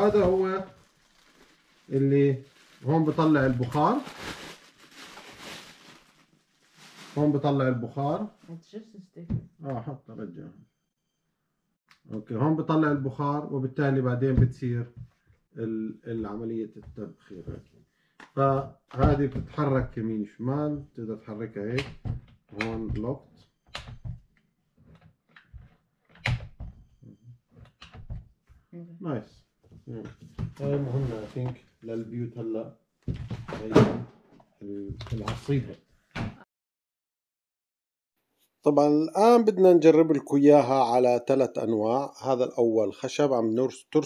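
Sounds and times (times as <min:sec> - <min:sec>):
plastic bag crinkling: 0:00.0 - 0:07.4.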